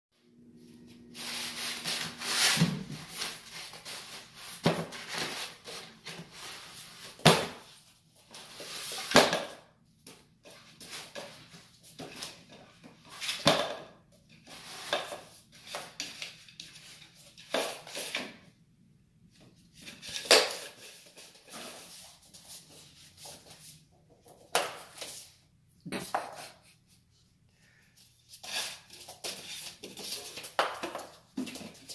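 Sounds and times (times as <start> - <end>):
paper rustling and scraping: 0.9 - 7.2.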